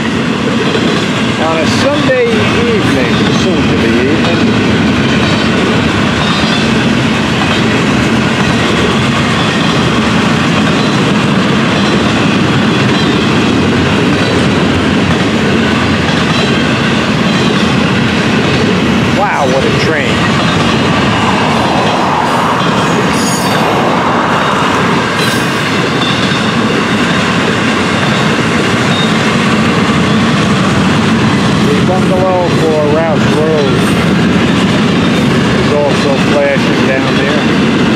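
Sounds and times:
rail joints clickety-clack: 0.0s - 37.9s
train wheels rumbling on rail: 0.0s - 37.9s.

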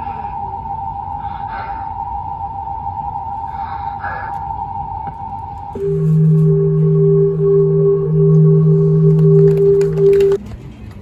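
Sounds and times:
droning music over loudspeakers: 0.0s - 10.4s.

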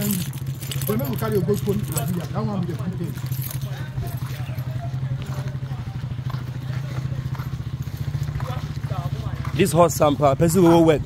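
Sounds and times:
faint voices: 0.0s - 11.0s
small engine running at low revs: 0.0s - 11.0s.

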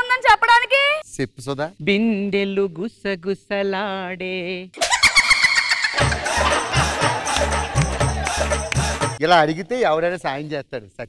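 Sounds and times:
wavering vocal cry: 4.8s - 7.7s.

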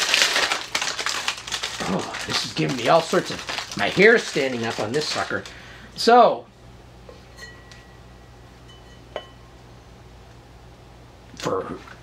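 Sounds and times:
low room hum: 0.0s - 12.0s
glass lid clinking on pot: 8.6s - 9.4s.

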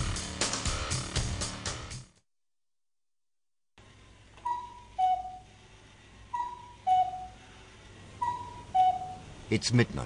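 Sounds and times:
cuckoo clock calling: 4.4s - 5.5s, 6.3s - 7.4s, 8.2s - 9.2s.

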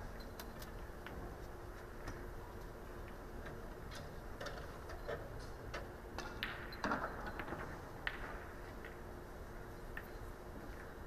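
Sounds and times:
low room hum: 0.0s - 11.0s
pool balls clicking: 2.0s - 9.2s.

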